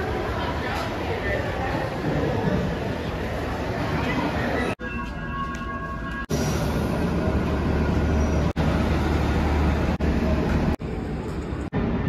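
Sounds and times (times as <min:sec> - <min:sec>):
city traffic noise: 0:00.0 - 0:12.0.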